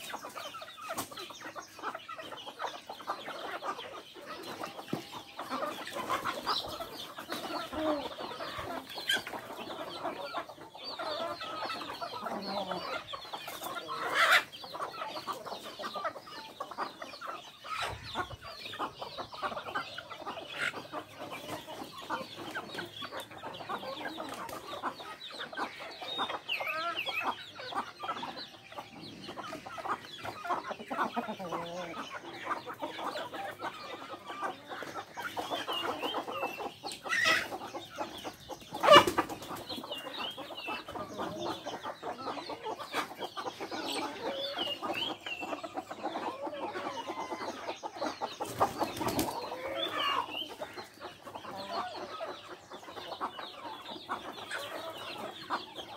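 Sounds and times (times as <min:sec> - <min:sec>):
chickens clucking and cheeping: 0:00.0 - 0:55.9.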